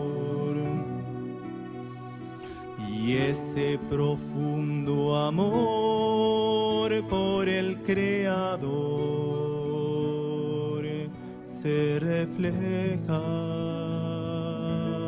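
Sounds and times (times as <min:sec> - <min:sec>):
classical guitars: 0:00.0 - 0:15.0
men singing a hymn: 0:00.0 - 0:15.0.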